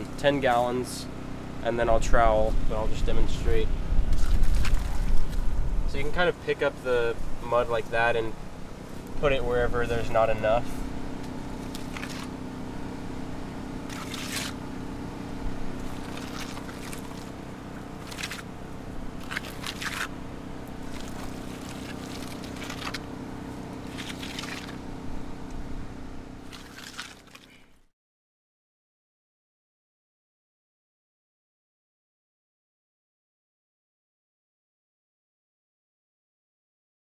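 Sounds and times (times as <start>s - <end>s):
steady hum: 0.0s - 27.8s
trowel scraping plaster: 13.9s - 14.6s.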